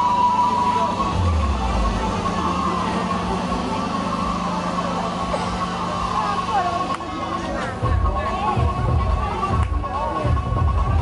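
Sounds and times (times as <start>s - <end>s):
steady low hum: 0.0s - 11.0s
street crowd chatter: 0.0s - 11.0s.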